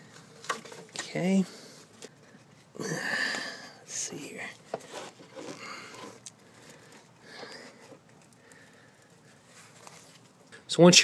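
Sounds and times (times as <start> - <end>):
faint breath: 5.5 - 9.8.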